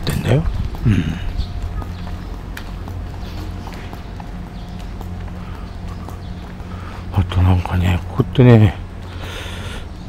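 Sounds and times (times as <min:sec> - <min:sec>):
footsteps on pavement: 0:00.0 - 0:10.0
steady low hum: 0:00.0 - 0:10.0.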